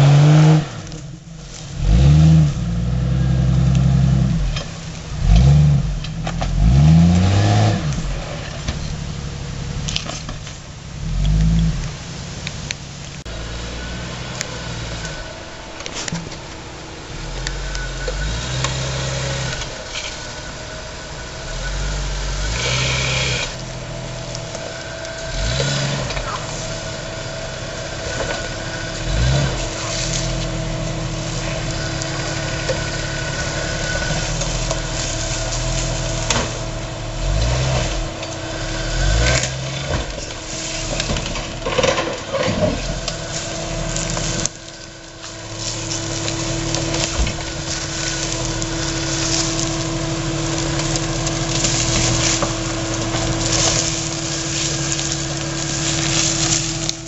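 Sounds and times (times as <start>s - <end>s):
engine running at low revs: 0.0s - 57.0s.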